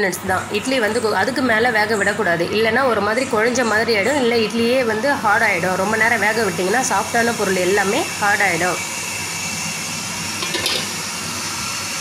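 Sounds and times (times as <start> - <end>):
steamer hissing: 6.2 - 12.0
light metal clink: 10.4 - 10.9.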